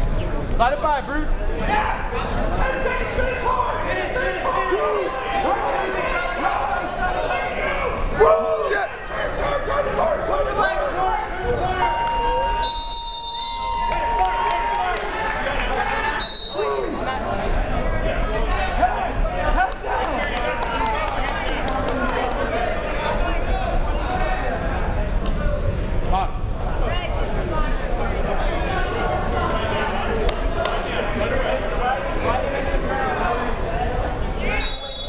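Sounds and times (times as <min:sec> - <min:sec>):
crowd voices and shouts: 0:00.0 - 0:35.0
referee's whistle: 0:11.7 - 0:14.3, 0:16.1 - 0:16.7, 0:34.5 - 0:35.0.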